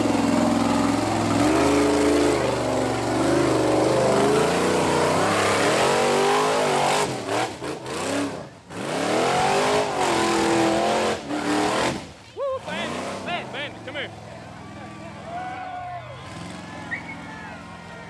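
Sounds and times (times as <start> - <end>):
buggy engine revving hard: 0.0 - 14.3, 16.1 - 17.2.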